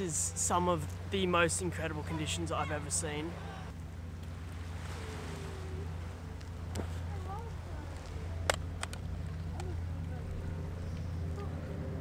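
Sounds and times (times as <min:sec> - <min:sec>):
water at shoreline: 0:00.0 - 0:12.0.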